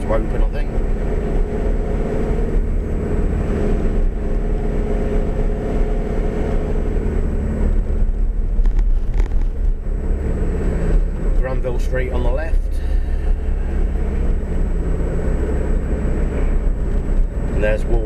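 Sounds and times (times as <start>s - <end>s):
low road noise: 0.0s - 18.0s
vehicle engine running: 0.0s - 18.0s.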